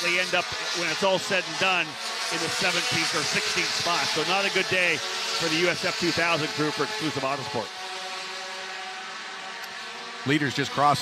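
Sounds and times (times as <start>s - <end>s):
race cars passing at speed: 0.0s - 11.0s.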